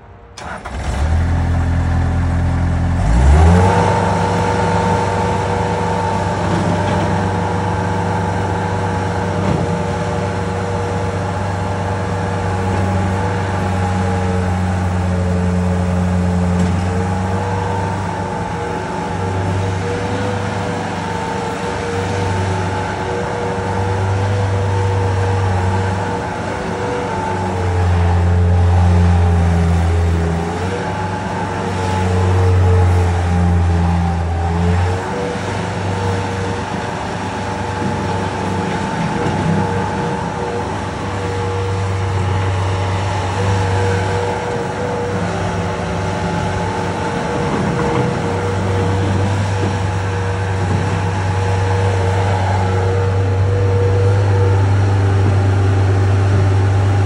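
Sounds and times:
skid steer diesel engine revving: 0:00.0 - 0:57.0.

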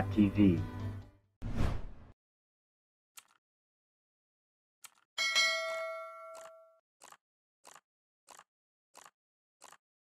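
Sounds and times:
bright bell ding: 0:05.2 - 0:06.8.

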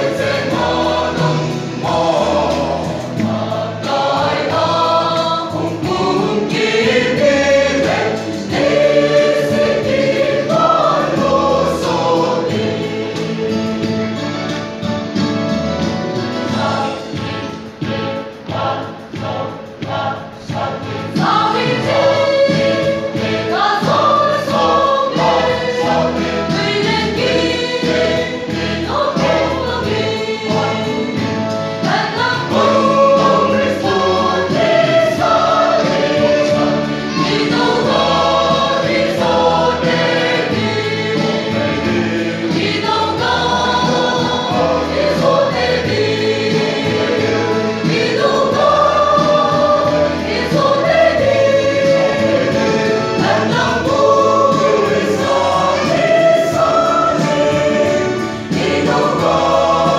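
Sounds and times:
mixed choir singing a hymn: 0:00.0 - 0:59.9.

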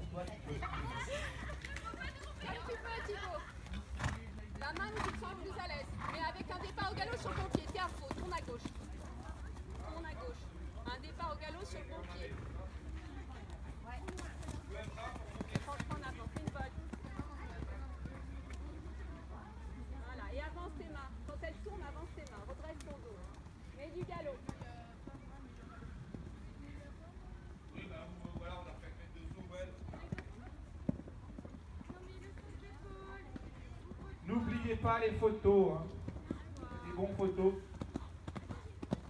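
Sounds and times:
horse hooves cantering on sand: 0:00.0 - 0:19.4, 0:20.5 - 0:39.0
people talking in background: 0:00.0 - 0:39.0.

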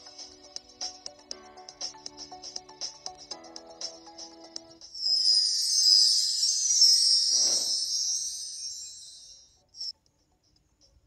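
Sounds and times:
high bright jingling: 0:05.0 - 0:09.5.

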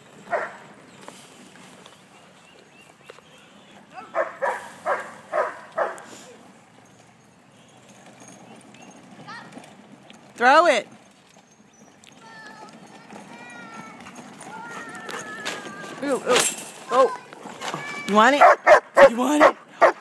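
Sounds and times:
dog barking: 0:00.3 - 0:00.6, 0:04.1 - 0:06.1, 0:18.4 - 0:20.0.

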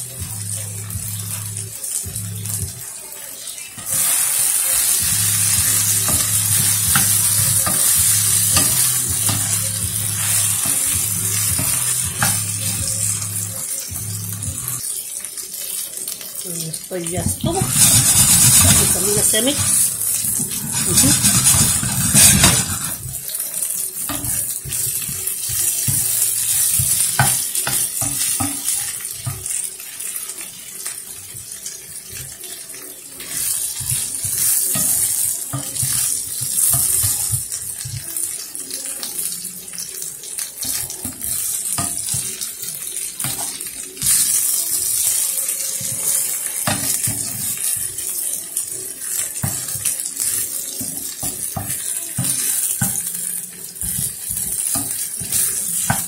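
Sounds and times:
meat sizzling in a frying pan: 0:00.0 - 0:56.0
spatula stirring meat in pan: 0:03.8 - 0:14.8, 0:17.1 - 0:38.4, 0:40.3 - 0:48.3, 0:48.9 - 0:56.0.

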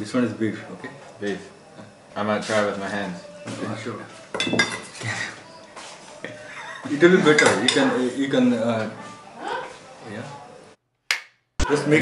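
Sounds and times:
metal spoon clinking on steel dishes: 0:04.3 - 0:05.0, 0:07.3 - 0:07.9.

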